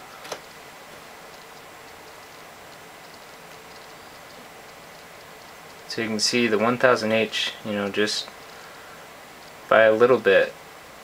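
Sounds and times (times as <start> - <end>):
steady low hiss: 0.0 - 11.0
faint ticks: 1.3 - 5.9, 9.4 - 9.6.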